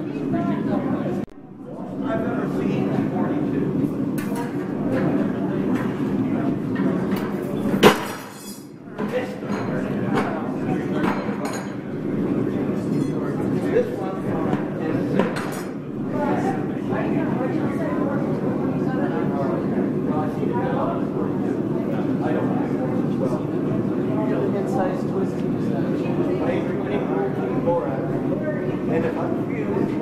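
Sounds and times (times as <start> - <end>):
people chatting: 0.0 - 8.1, 8.9 - 30.0.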